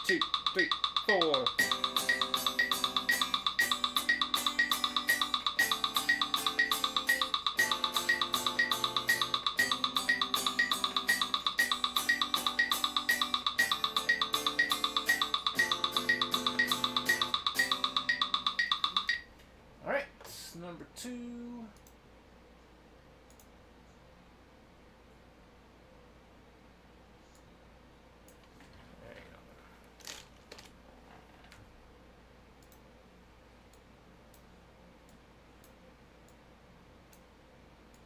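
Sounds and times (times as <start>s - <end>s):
electric guitar strumming chords: 0.0s - 18.6s
metronome click: 0.0s - 19.3s.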